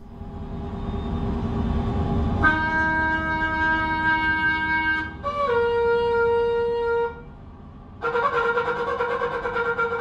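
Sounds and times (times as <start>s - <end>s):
road and engine rumble: 0.0s - 10.0s
shofar held note: 2.4s - 7.2s, 8.0s - 10.0s.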